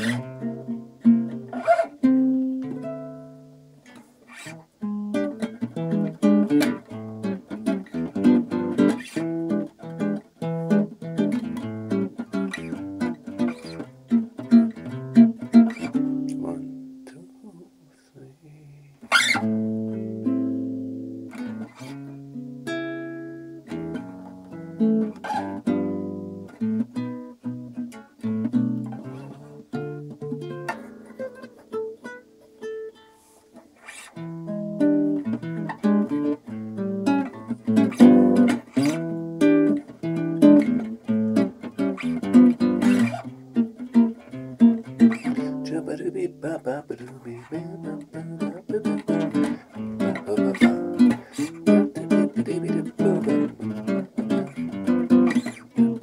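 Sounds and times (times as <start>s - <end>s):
classical guitar fingerstyle blues: 0.0s - 56.0s.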